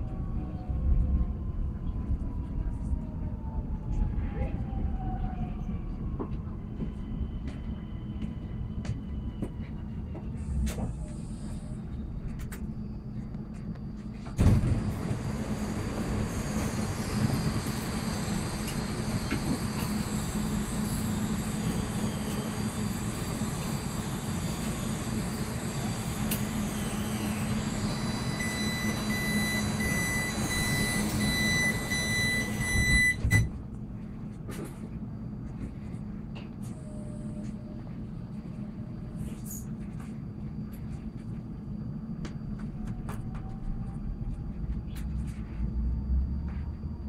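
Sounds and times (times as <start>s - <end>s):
electric train humming: 4.9s - 47.0s
sliding doors opening with thump: 14.3s - 16.8s
high whines: 14.4s - 33.5s
warning beep: 27.9s - 33.5s.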